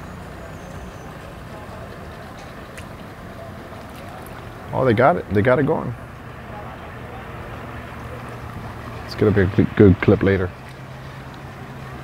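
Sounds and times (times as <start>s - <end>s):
distant outboard motor idling: 0.0s - 12.0s.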